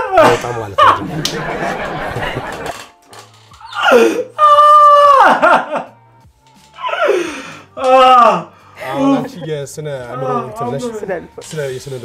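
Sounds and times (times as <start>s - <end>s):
man wailing cries: 0.0s - 1.0s, 3.6s - 5.8s, 6.8s - 9.5s, 10.1s - 11.0s.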